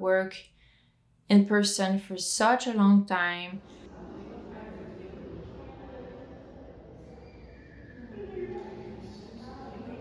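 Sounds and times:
room hum: 0:00.0 - 0:10.0
faint indistinct voices: 0:03.6 - 0:10.0.

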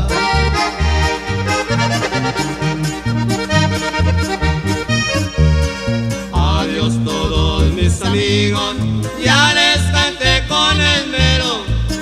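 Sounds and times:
accordion playing: 0:00.0 - 0:12.0
bouncing bass line: 0:00.0 - 0:12.0
rhythmic accompaniment: 0:00.0 - 0:12.0.

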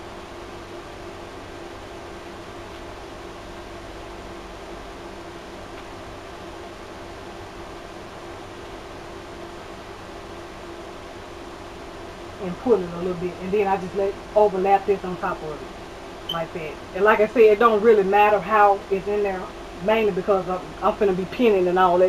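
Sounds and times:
faint constant hum: 0:00.0 - 0:22.0.

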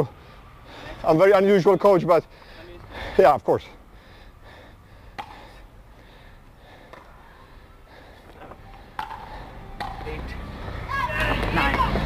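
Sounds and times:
faint background noise: 0:00.0 - 0:12.0.

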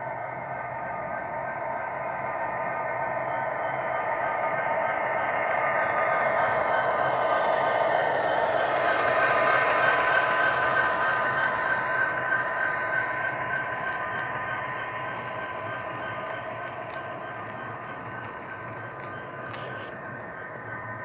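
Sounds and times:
model locomotive whine: 0:00.0 - 0:21.0
wheels rumbling on rails: 0:00.0 - 0:21.0.

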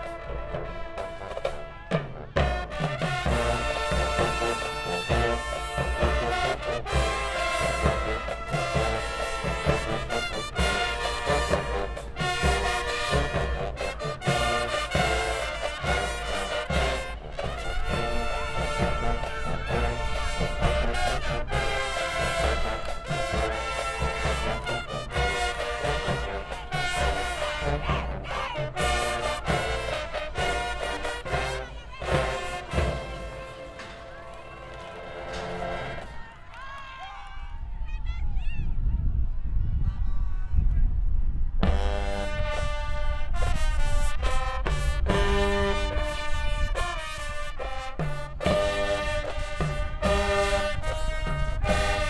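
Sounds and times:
steady drum beat: 0:00.0 - 0:33.7, 0:47.0 - 0:52.0
marching band playing: 0:00.0 - 0:36.8, 0:41.6 - 0:52.0.

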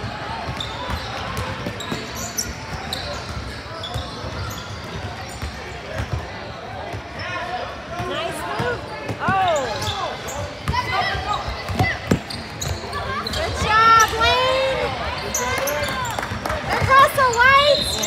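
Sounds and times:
sneakers squeaking: 0:00.3 - 0:18.0
basketball bouncing: 0:11.6 - 0:12.8.

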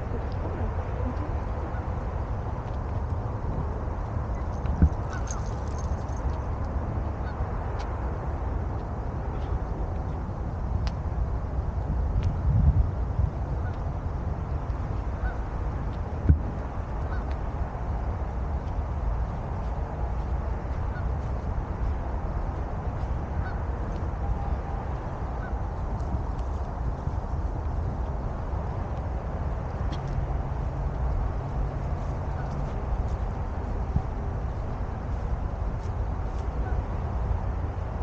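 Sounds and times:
wind rumbling on microphone: 0:00.0 - 0:38.0.

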